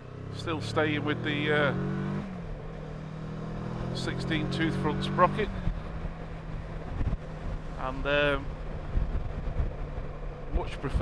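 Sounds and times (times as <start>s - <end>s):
motorcycle engine: 0.0s - 11.0s
road noise: 0.0s - 11.0s
rushing wind: 1.8s - 11.0s.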